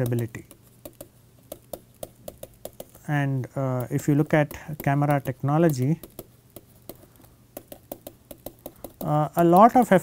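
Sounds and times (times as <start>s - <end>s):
stylus pen tapping on tablet: 0.0s - 3.0s, 3.7s - 9.9s.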